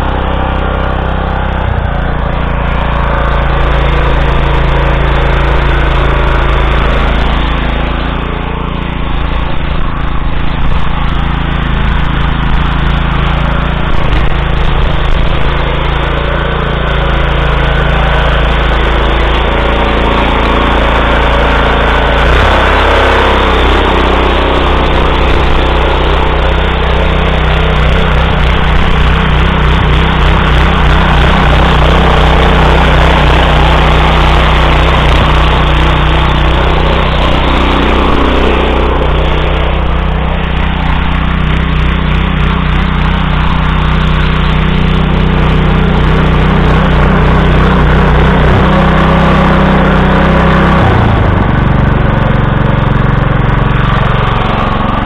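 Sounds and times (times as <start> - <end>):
petrol engine running under load: 0.0 - 55.0
tiller rotors churning wet soil: 0.0 - 55.0.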